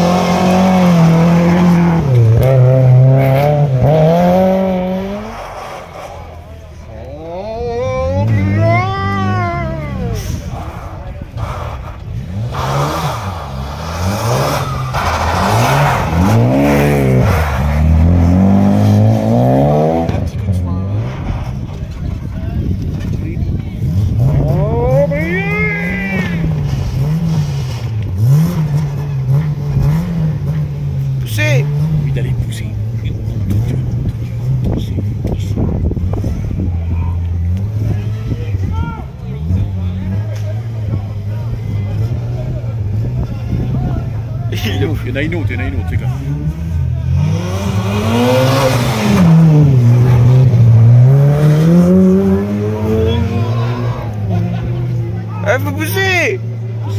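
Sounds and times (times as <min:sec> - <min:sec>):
rally car engine revving: 0:00.0 - 0:56.9.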